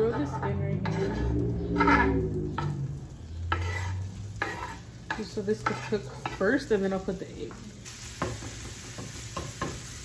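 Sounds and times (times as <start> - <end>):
scraping on wooden cutting board: 0.0 - 2.7, 3.5 - 6.6
light sizzling in pan: 2.6 - 10.0.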